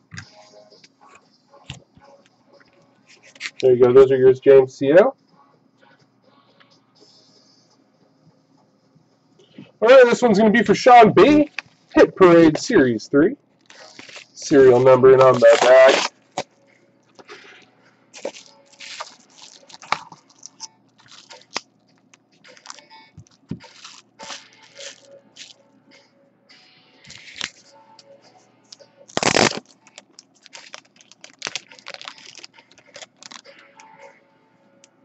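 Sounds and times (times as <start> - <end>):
packaging crinkling by hand: 3.1 - 3.7, 13.6 - 16.5, 18.2 - 25.6, 27.1 - 27.7, 28.7 - 34.0.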